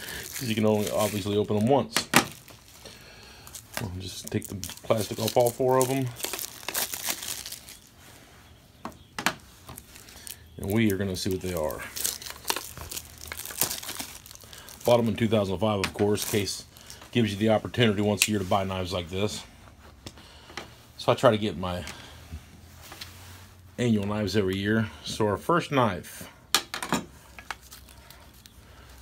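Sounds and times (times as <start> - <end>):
plastic wrap crinkling: 0.0 - 8.1, 9.4 - 19.1, 27.4 - 29.0.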